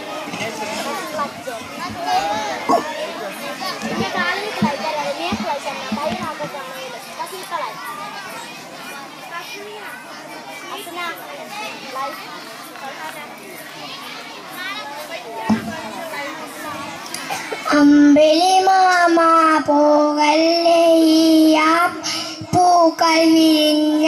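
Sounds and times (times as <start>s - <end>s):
children chattering: 0.0s - 24.0s.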